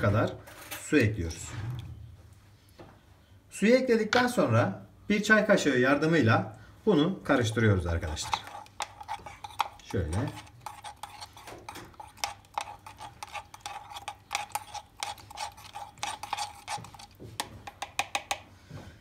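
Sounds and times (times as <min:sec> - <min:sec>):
teaspoon clinking in a pot: 0:08.1 - 0:18.4.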